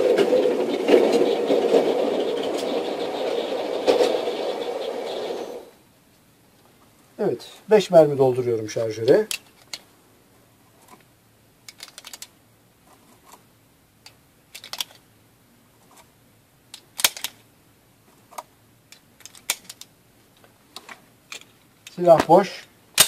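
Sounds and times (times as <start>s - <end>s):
loose rounds handling noise: 9.0s - 9.9s, 10.7s - 15.1s, 15.8s - 23.0s
cartridges clicking into magazine: 11.7s - 12.3s, 16.7s - 17.4s, 18.9s - 19.9s.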